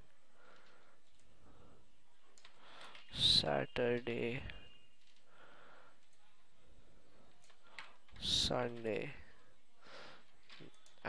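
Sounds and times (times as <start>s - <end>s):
computer keyboard clicks: 0.6s - 1.3s, 2.4s - 3.1s, 10.4s - 11.0s.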